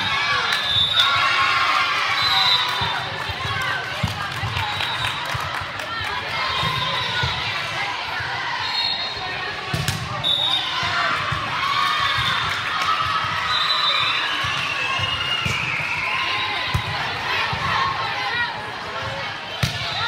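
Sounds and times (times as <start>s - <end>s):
spectators chattering: 0.0s - 20.0s.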